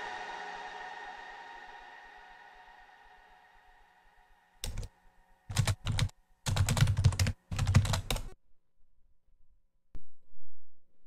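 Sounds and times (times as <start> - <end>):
typing on computer keyboard: 4.6 - 4.9, 5.5 - 8.4.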